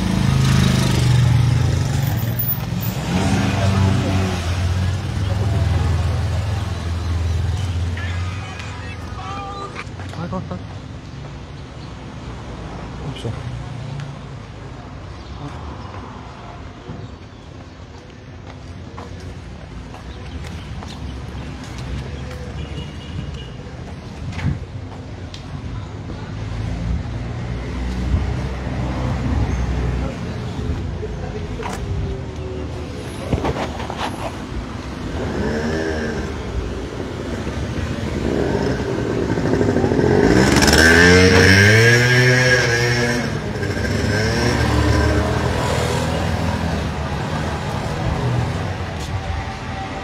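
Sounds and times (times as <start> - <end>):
street rumble: 0.0 - 50.0
motor scooter passing: 34.9 - 50.0.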